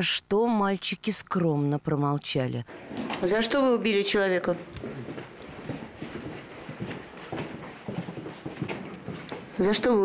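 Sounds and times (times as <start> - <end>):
footsteps on hard floor: 4.4 - 9.9.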